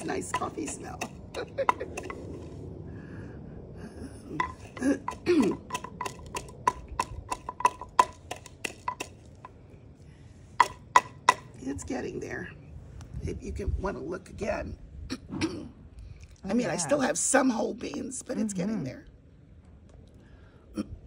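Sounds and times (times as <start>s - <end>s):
pestle crushing beans in mortar: 0.0s - 2.4s, 4.4s - 9.6s, 10.6s - 11.6s
vocal grunt: 3.8s - 5.7s.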